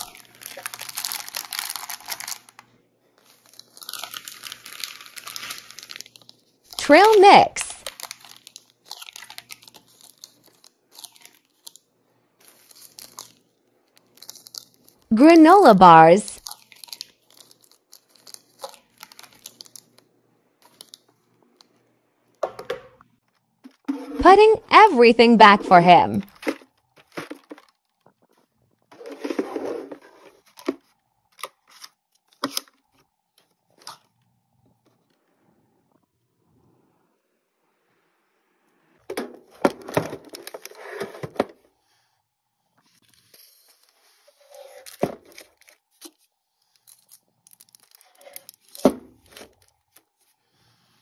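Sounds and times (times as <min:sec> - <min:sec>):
plastic packets rustling: 0:00.0 - 0:02.6, 0:03.2 - 0:07.2, 0:07.8 - 0:11.8, 0:12.4 - 0:15.1, 0:16.4 - 0:21.1, 0:42.9 - 0:50.3
plastic rustles and clicks: 0:26.3 - 0:35.2, 0:39.2 - 0:41.6, 0:42.8 - 0:50.2.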